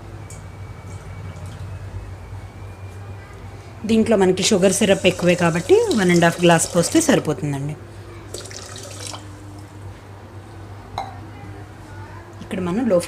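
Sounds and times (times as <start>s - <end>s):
water pouring into steel pot: 4.8s - 7.1s, 8.3s - 9.3s.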